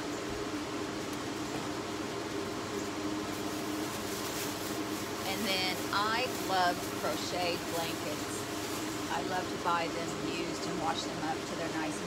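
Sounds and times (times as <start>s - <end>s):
mechanical hum: 0.0s - 12.0s
faint rustling: 3.2s - 9.3s.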